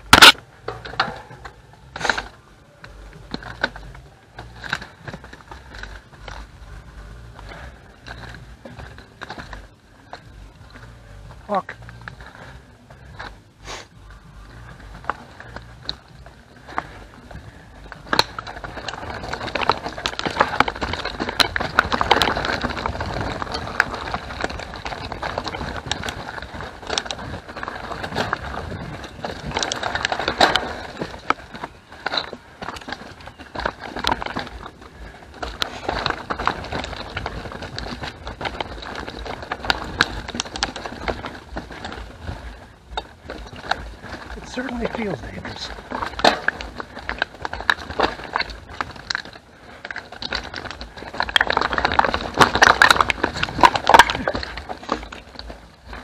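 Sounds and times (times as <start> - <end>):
bike clacking over rocks: 0.0 - 56.0
bike tyres rolling: 0.0 - 56.0.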